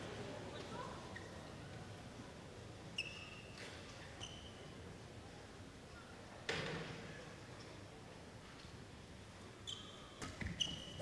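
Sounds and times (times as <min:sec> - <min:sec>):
shoes squeaking on court floor: 0:04.2 - 0:04.6, 0:09.6 - 0:11.0.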